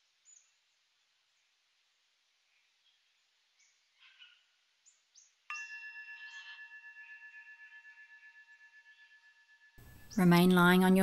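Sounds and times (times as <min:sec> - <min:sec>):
faint bird chirps: 0:02.4 - 0:07.4
resonant metal chime: 0:05.5 - 0:10.8.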